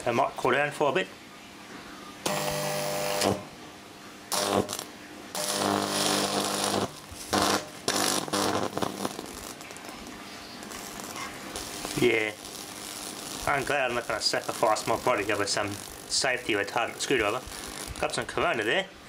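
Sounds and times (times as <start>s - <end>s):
electric arc buzzing: 2.2s - 3.6s, 4.3s - 18.9s
soft steady crackle: 4.0s - 18.9s.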